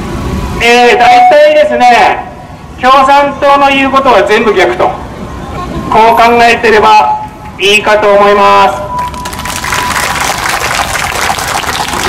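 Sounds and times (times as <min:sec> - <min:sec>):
crowd applauding: 0:09.0 - 0:12.0.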